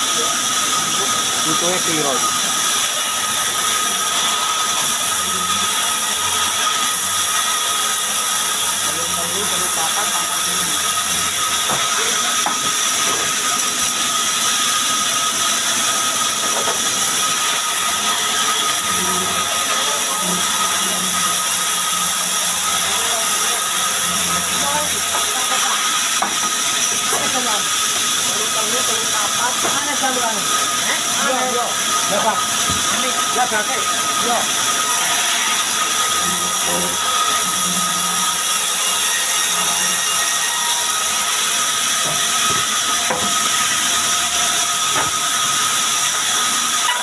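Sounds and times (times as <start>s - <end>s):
band saw cutting log: 0.0s - 47.0s.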